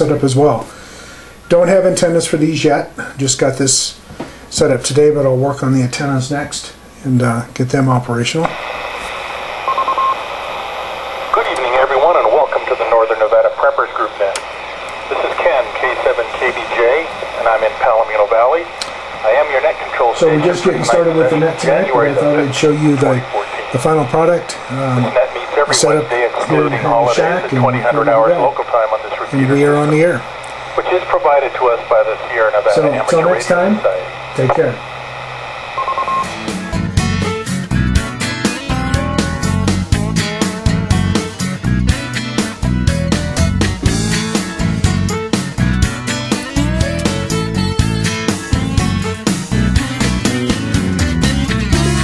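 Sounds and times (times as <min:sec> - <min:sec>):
radio receiver hiss: 0:08.3 - 0:36.9
thin voice over radio: 0:15.0 - 0:23.9, 0:24.5 - 0:34.8
strummed guitar music: 0:36.2 - 0:52.0.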